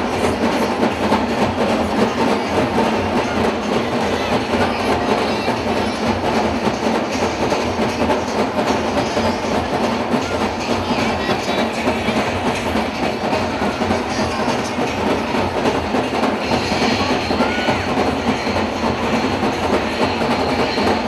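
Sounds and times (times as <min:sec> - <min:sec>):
fast drumming: 0:00.0 - 0:21.0
street crowd din: 0:00.0 - 0:21.0.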